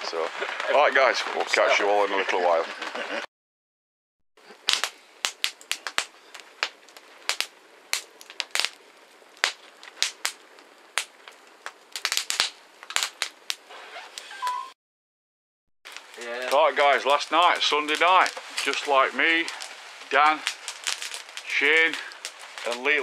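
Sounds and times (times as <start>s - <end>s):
paper burning with crackling snaps: 0.0s - 3.2s, 4.4s - 14.5s, 15.9s - 23.0s.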